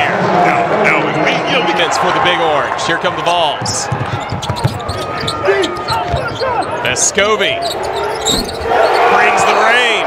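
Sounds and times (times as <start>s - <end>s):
basketball dribbling on hardwood: 3.6s - 6.5s
sneaker squeaks: 3.8s - 10.0s.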